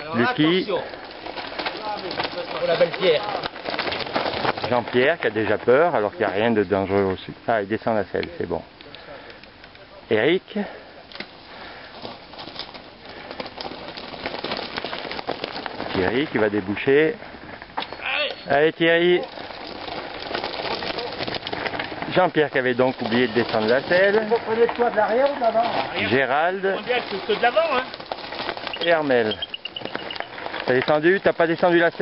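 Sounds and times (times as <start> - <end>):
bike tyres crunching on stones: 0.0 - 32.0.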